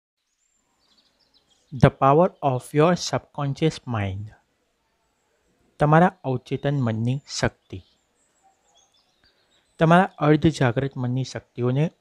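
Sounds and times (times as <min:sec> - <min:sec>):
man speaking: 0:01.7 - 0:04.4, 0:05.8 - 0:07.8, 0:09.8 - 0:12.0.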